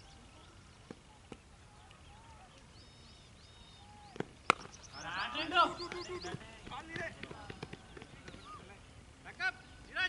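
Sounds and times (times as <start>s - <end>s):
faint birdsong: 0.0s - 10.0s
cricket bat striking ball: 4.1s - 4.8s.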